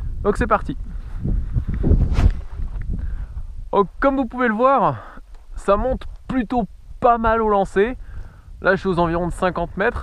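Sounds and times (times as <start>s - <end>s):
wind buffeting microphone: 0.0s - 4.3s, 5.4s - 10.0s
sharp rush of air: 1.8s - 2.6s.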